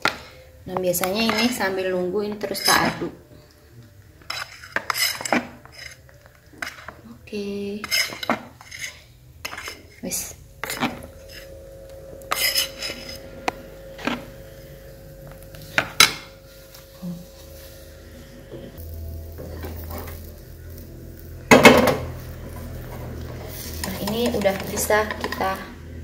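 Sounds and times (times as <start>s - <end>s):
metal kitchenware clatter: 2.4s - 3.1s, 4.3s - 6.0s, 7.8s - 9.9s.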